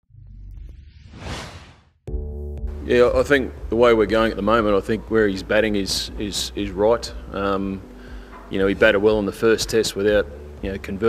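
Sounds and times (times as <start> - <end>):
rumbling whoosh sound effect: 0.7 - 1.9.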